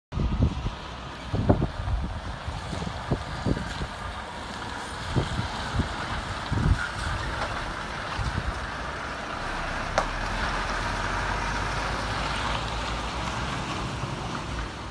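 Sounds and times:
wind buffeting microphone: 0.1s - 14.9s
diesel truck driving past: 0.2s - 14.9s.

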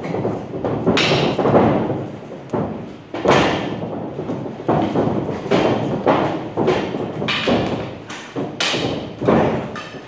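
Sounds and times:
stick hits and thuds: 0.0s - 10.0s.

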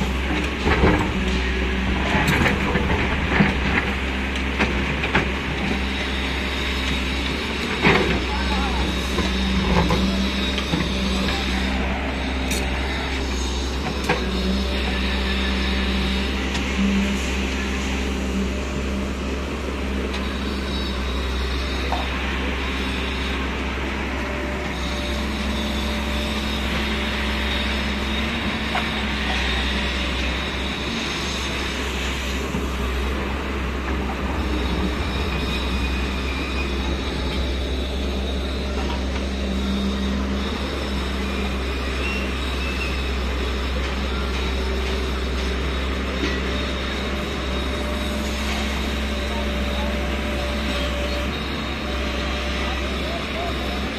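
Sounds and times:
excavator diesel engine: 0.0s - 53.9s
excavator digging soil and rock: 0.0s - 53.9s.

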